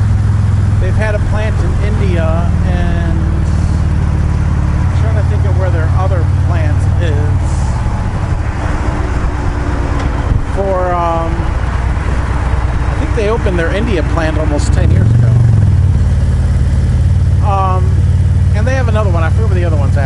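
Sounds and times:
motorcycle engine running: 0.0s - 20.0s
man talking: 0.8s - 3.9s, 4.9s - 7.7s, 10.5s - 11.6s, 12.9s - 15.6s, 17.4s - 20.0s
wind noise: 6.3s - 17.1s.

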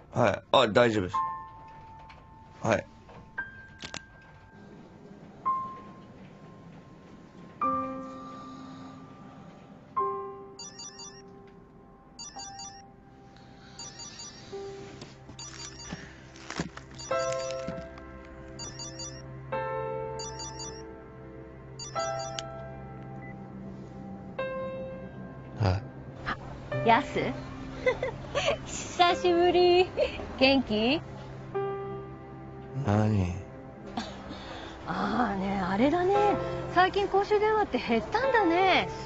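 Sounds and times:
soft background music: 0.0s - 39.0s
bell-like note ringing: 10.6s - 11.3s, 12.2s - 12.8s, 13.7s - 14.5s, 17.0s - 17.8s, 18.6s - 19.2s, 20.2s - 20.9s, 21.8s - 22.6s.

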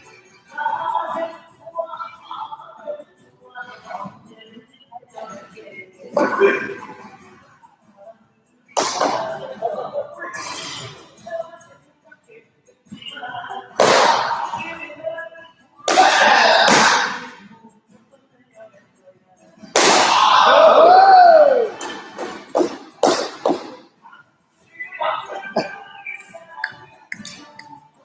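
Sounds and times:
sharp slaps: 8.8s - 9.3s, 13.8s - 14.4s, 15.9s - 17.4s, 19.8s - 20.4s, 21.8s - 23.8s
loud shouted yells: 15.9s - 17.2s, 19.8s - 21.8s.

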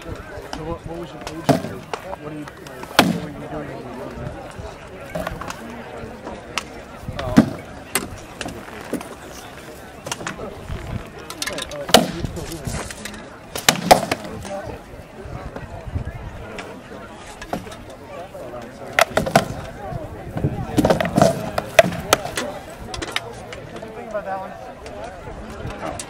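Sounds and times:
spectators talking: 0.0s - 26.0s
swords striking shields: 2.9s - 3.3s, 11.9s - 12.2s, 13.6s - 14.4s, 19.0s - 19.6s, 20.7s - 22.4s.

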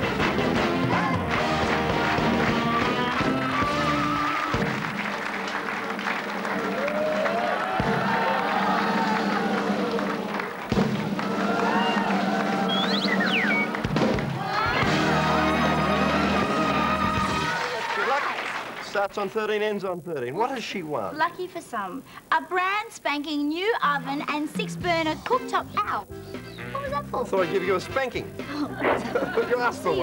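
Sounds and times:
game show music: 0.0s - 7.4s, 8.0s - 17.7s, 24.0s - 30.0s.

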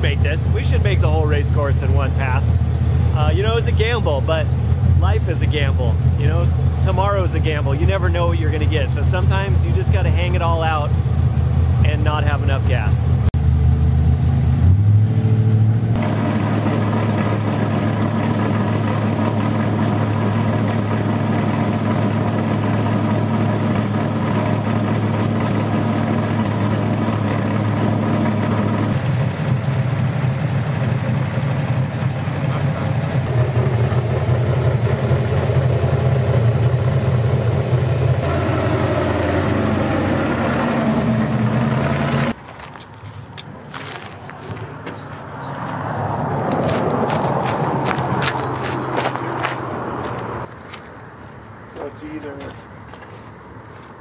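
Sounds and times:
truck engine running: 0.0s - 54.0s.

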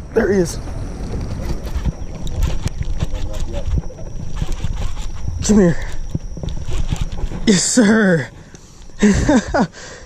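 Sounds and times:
microphone handling rumble: 0.0s - 9.7s
faint steady high tone: 0.0s - 10.0s.

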